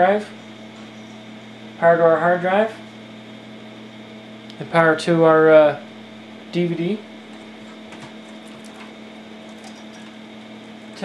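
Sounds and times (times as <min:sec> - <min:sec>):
room hum: 0:00.0 - 0:11.0
cables ticking and rustling: 0:07.2 - 0:11.0.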